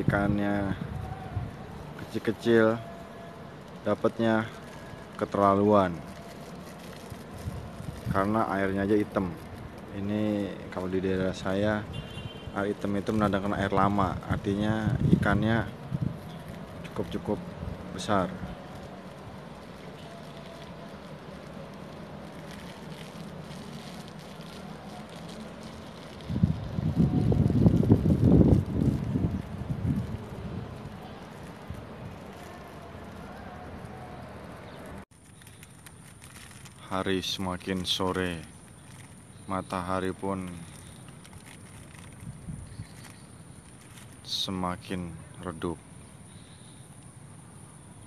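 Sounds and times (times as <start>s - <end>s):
wind buffeting microphone: 0.0s - 2.3s, 6.8s - 19.0s, 25.2s - 32.4s, 42.0s - 43.1s
outdoor background noise: 0.0s - 48.0s
wind bumps on microphone: 13.7s - 16.3s, 26.2s - 31.0s.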